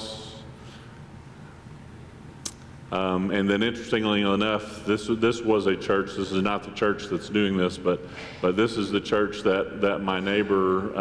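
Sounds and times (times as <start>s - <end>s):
man speaking: 2.9s - 11.0s.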